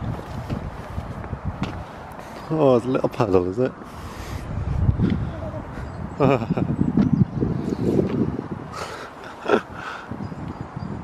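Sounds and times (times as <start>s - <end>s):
footsteps on wet path: 0.0s - 4.4s
wind buffeting microphone: 0.0s - 11.0s.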